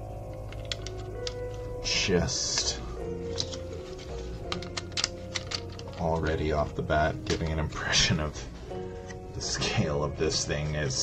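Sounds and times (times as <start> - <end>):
plastic bricks clicking and clattering: 0.4 - 1.6, 3.3 - 6.4
person speaking: 1.8 - 8.6, 9.3 - 11.0.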